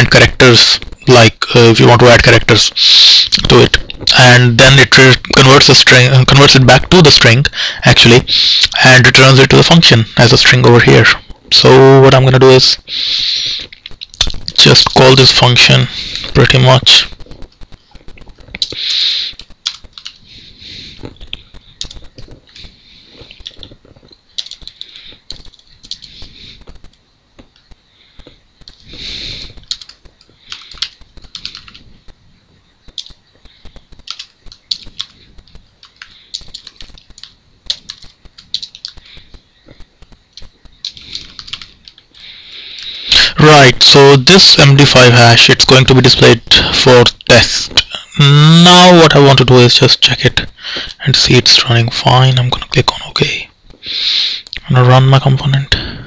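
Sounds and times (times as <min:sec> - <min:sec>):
steady hiss: 0:00.0 - 0:56.0
computer keyboard typing: 0:13.6 - 0:32.2, 0:32.8 - 0:43.0.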